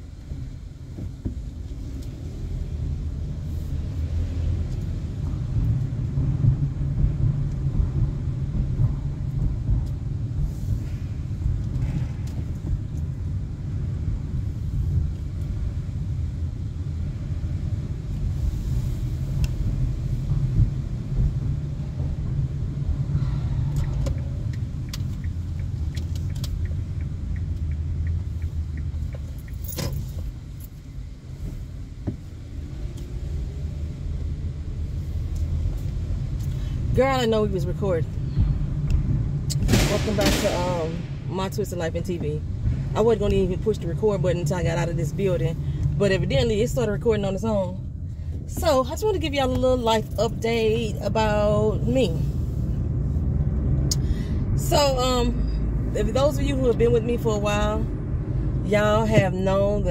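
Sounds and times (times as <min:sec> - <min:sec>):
road and engine rumble in car: 0:00.0 - 0:59.9.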